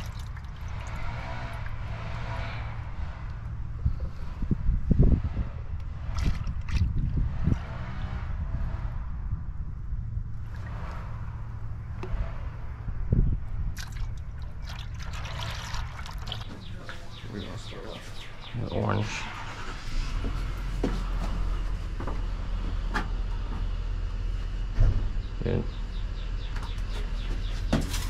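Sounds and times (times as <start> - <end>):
liquid sloshing in plastic buckets: 0.0 - 1.9, 6.0 - 7.1, 13.7 - 17.2
steady low rumble: 0.1 - 26.5.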